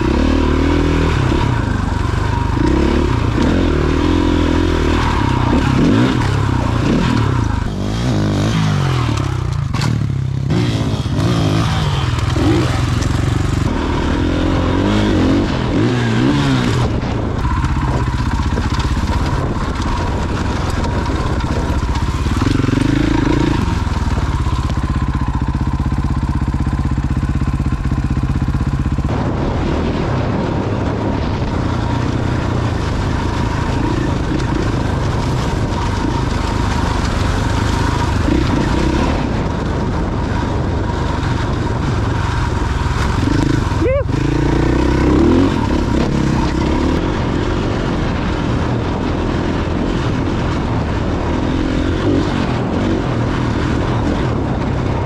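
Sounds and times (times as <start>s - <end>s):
dirt bike engine under load: 0.0s - 29.1s.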